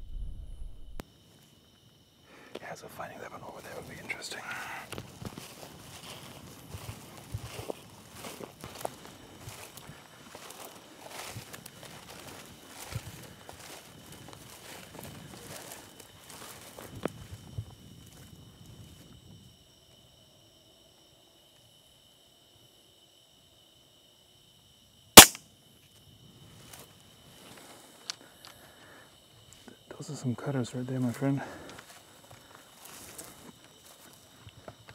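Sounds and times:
footsteps crunching through stubble: 3.5s - 18.3s, 31.0s - 34.9s
rifle shot: 25.2s - 25.4s.

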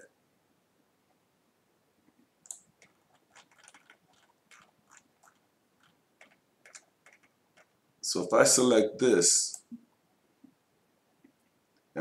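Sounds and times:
computer mouse clicks: 2.4s - 7.8s.

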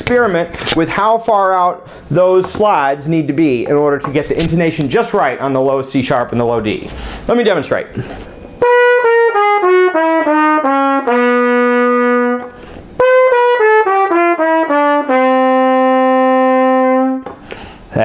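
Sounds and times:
trumpet playing descending scales: 8.6s - 17.2s.

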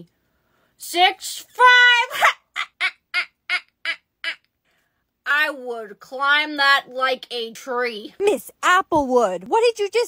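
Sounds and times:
woman laughing: 2.1s - 4.4s.

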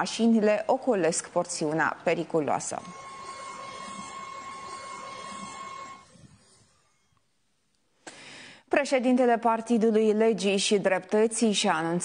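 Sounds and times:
steady high-pitched whine: 0.0s - 7.4s.

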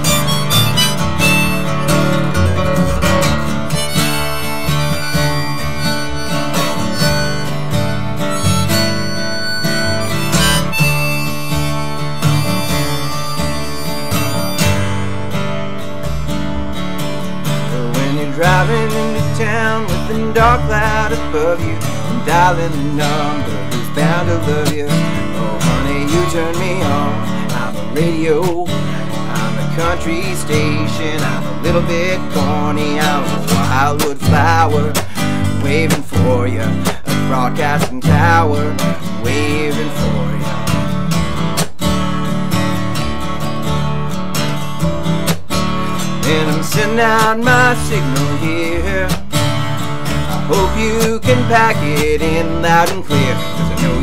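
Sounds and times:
harmonica playing lead: 0.0s - 15.6s
strummed acoustic guitar: 0.0s - 54.0s
upright double bass: 0.0s - 54.0s.

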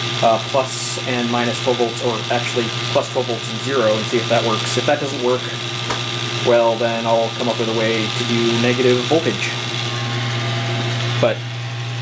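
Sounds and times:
teletype motor hum and whir: 0.0s - 12.0s.

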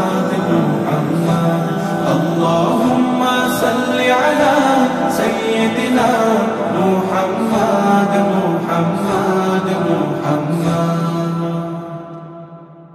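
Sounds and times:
men chanting in long held notes: 0.0s - 12.1s.

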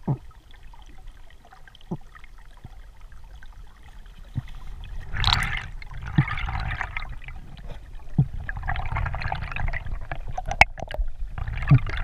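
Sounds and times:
fine underwater crackling: 0.0s - 12.0s
underwater water rumble: 0.0s - 12.0s.

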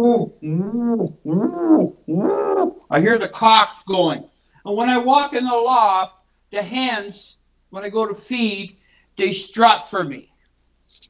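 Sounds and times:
man imitating pigeon cooing: 0.0s - 3.0s.

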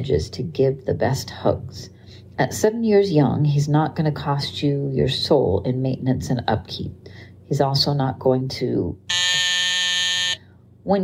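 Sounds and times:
censor bleep buzzer tone: 9.1s - 10.4s.

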